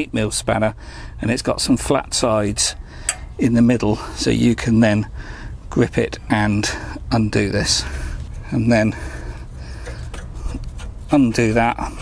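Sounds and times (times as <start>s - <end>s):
metal rod rubbing: 9.5s - 12.0s.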